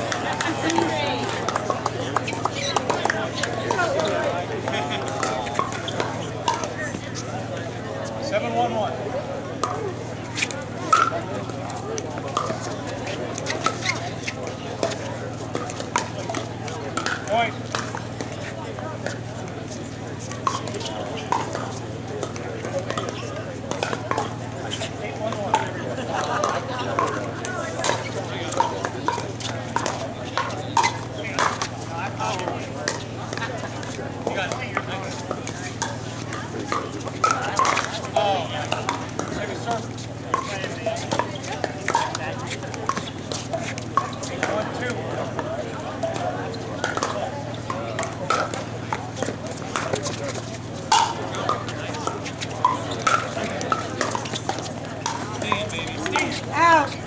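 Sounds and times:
indistinct voices: 0.0 - 57.0.

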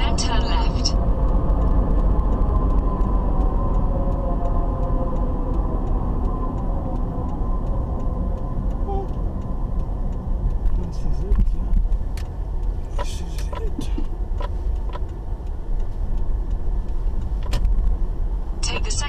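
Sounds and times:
car engine and road noise: 0.0 - 19.0
navigation voice prompt: 8.9 - 9.1.

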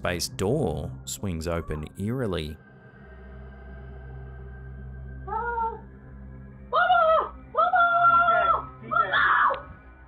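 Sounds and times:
low background music drone: 0.0 - 10.0.

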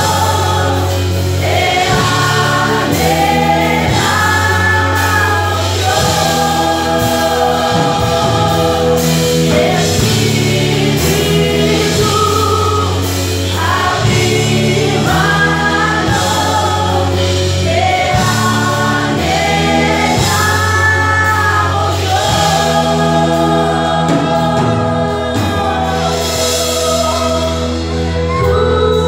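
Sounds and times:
band playing: 0.0 - 29.0
people singing together: 0.0 - 29.0
sustained low bass notes: 0.0 - 29.0.

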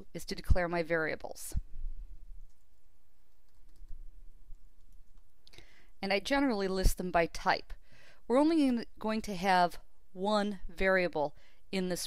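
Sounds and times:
keyboard typing: 2.4 - 5.3.

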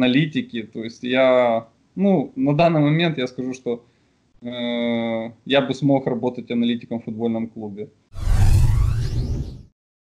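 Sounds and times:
deep rumble: 8.2 - 9.7
whoosh sound effect: 8.2 - 9.7.

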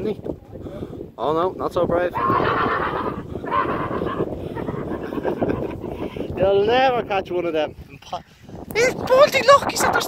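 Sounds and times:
man laughing hard: 2.5 - 6.1.

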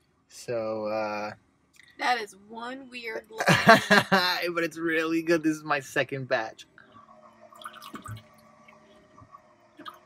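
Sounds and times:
faint steady hum: 0.0 - 10.0
water dripping into plastic jug: 7.6 - 8.8.

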